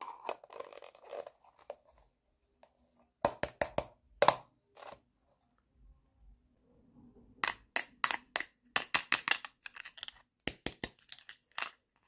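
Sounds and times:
plastic toy dishes clicking: 7.4 - 11.8.

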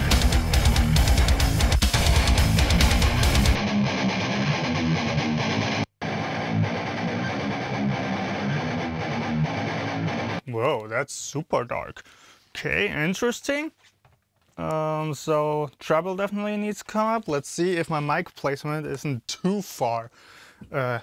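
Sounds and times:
drums: 0.0 - 3.8
bass guitar: 0.0 - 10.4
distorted electric guitar riff: 0.0 - 10.4.

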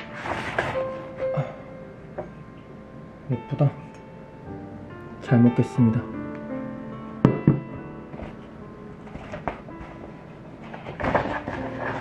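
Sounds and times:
soft background music: 0.0 - 12.0
paper handling: 9.1 - 12.0.

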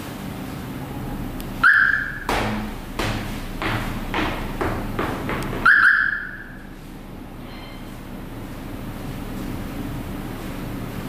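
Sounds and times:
car lock beeps: 5.7 - 6.5.

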